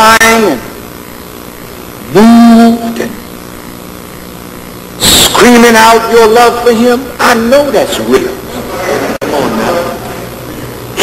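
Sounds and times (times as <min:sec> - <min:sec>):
hall hum and recording hiss: 0:00.0 - 0:11.0.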